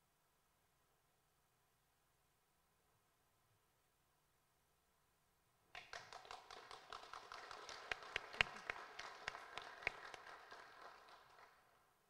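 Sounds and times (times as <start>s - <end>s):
faint applause: 5.8s - 11.8s.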